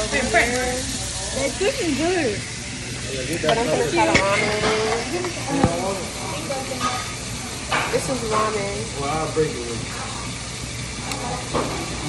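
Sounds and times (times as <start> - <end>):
steady sizzling hiss: 0.0 - 12.0
voices talking: 0.0 - 12.0.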